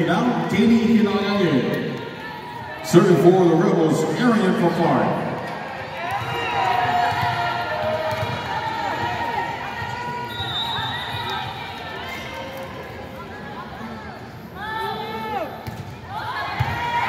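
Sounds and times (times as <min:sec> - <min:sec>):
crowd chatter in large hall: 0:00.0 - 0:17.0.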